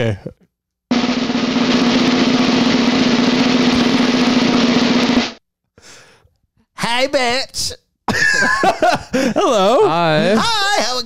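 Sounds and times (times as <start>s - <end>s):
snare drum roll: 0.9s - 5.4s.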